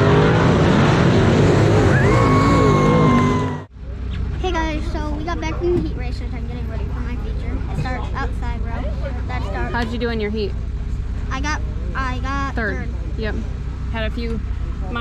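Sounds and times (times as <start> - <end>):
steady low rumble: 3.6 - 15.0
child talking: 4.4 - 10.0, 11.3 - 12.9.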